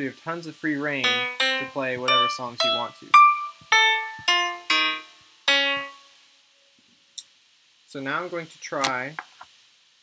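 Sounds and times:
piano notes: 0.9s - 6.1s.

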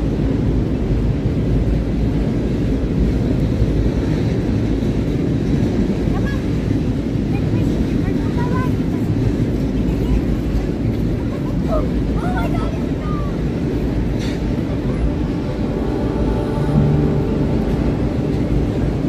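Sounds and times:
wind buffeting microphone: 0.0s - 19.0s
faint voices of passers-by: 5.8s - 19.0s
music: 14.7s - 19.0s.

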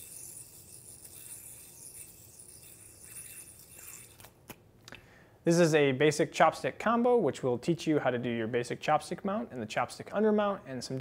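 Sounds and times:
spinning yoyo whirr: 0.0s - 4.4s
yoyo string rubbing and rattling: 0.0s - 4.6s.

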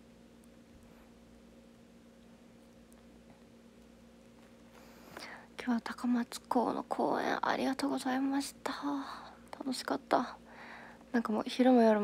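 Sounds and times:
faint low hum: 0.0s - 12.0s
breath: 4.7s - 5.5s, 10.4s - 11.1s
woman speaking softly: 5.6s - 10.4s, 11.1s - 12.0s.

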